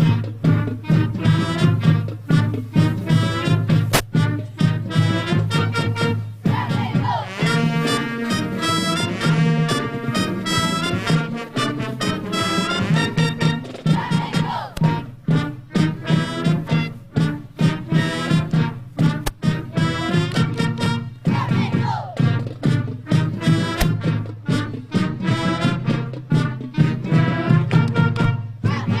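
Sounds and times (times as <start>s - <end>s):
marching band brass tune: 0.0s - 29.0s.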